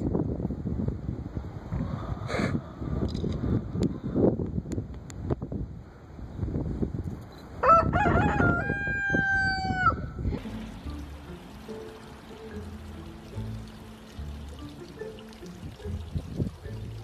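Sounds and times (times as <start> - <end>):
rooster crowing: 7.6 - 10.1.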